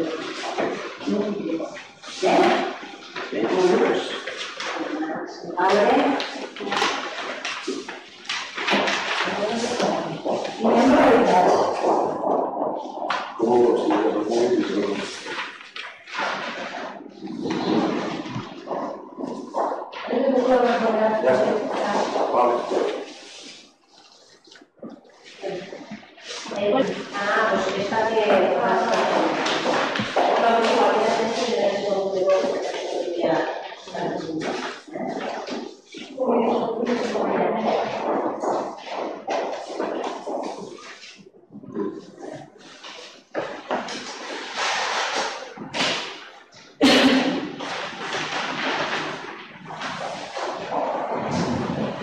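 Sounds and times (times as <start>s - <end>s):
indistinct talking voices: 0.0s - 7.2s, 9.1s - 23.6s, 24.8s - 43.9s.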